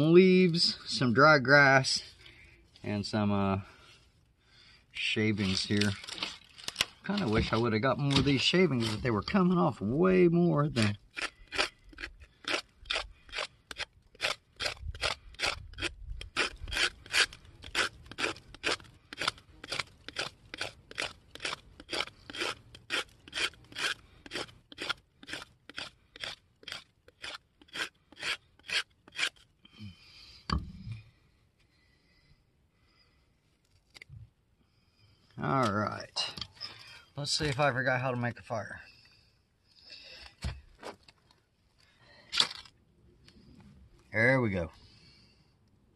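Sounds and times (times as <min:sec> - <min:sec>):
knife scraping wooden stick: 0:05.3 - 0:09.3, 0:10.7 - 0:29.5.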